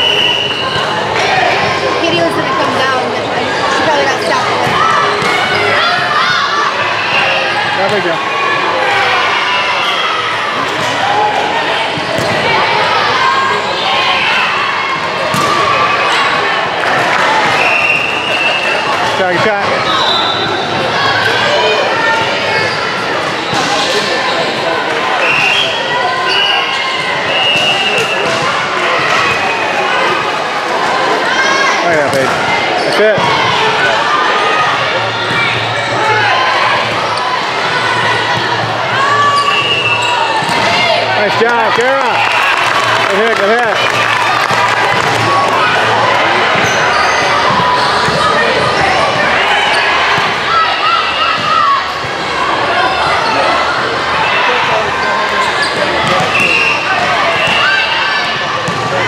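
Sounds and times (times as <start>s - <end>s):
voices talking and calling: 0.0s - 59.0s.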